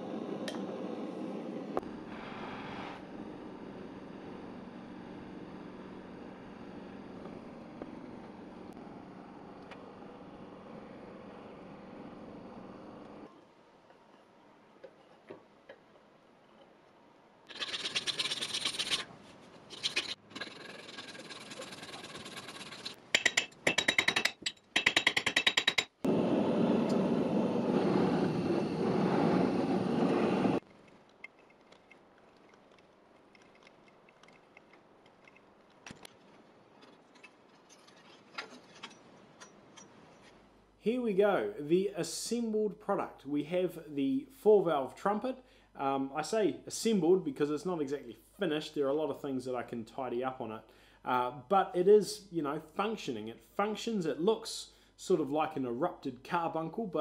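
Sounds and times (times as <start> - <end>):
blowtorch flame hissing: 0.0 - 13.2, 26.0 - 30.6
rasping and scraping on metal: 17.5 - 23.0, 36.8 - 40.4.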